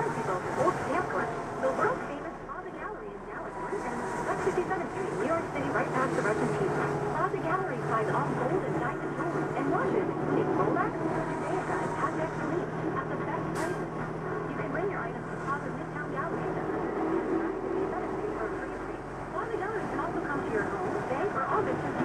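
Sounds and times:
engine low hum: 0.0s - 22.0s
radio talk: 0.0s - 22.0s.

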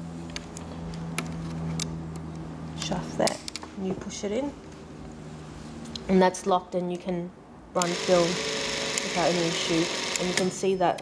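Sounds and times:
steady low hum: 0.0s - 10.7s.

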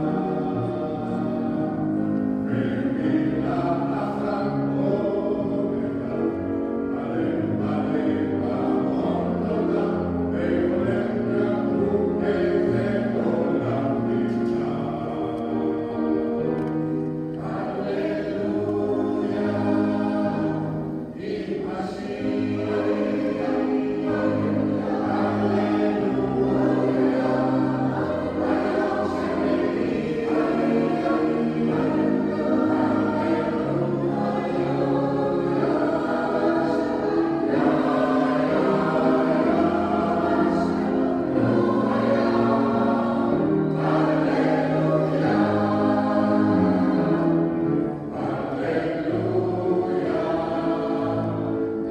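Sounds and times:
mixed choir singing: 0.0s - 51.9s.

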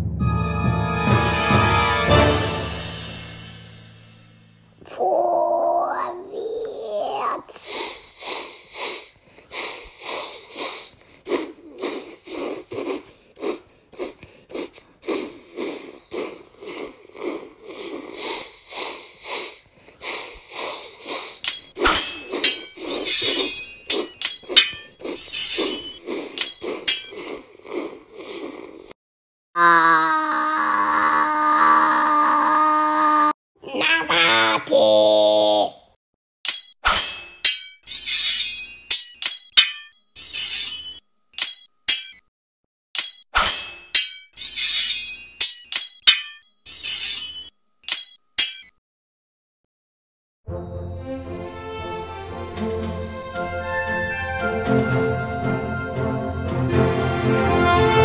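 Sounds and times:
swords clashing: 21.4s - 27.2s, 36.5s - 42.2s, 43.0s - 48.8s
long pitched cry: 29.6s - 35.6s.

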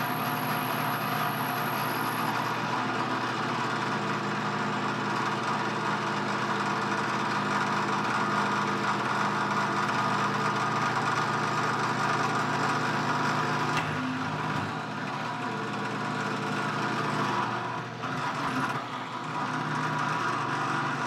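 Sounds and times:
drill press cutting steel: 0.0s - 21.0s.

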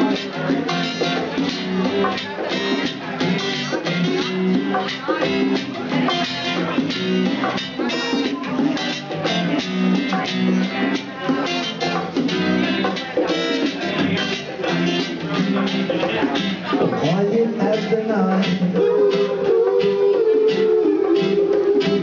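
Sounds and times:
acoustic guitars strumming: 0.0s - 22.0s
hand drums: 0.0s - 22.0s.

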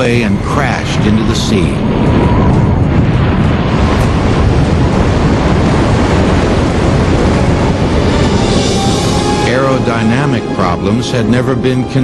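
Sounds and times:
wind roaring: 0.0s - 12.0s.

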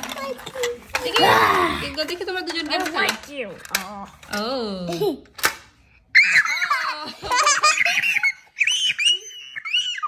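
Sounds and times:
young child laughing and squealing: 6.1s - 10.0s.

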